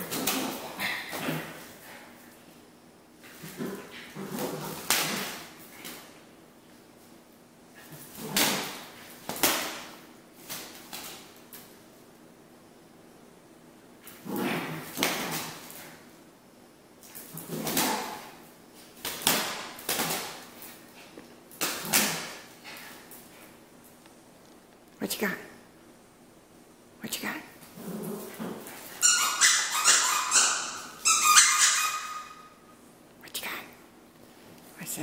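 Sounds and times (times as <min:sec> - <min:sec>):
squeaky dog toy squeaking: 0:29.0 - 0:32.6.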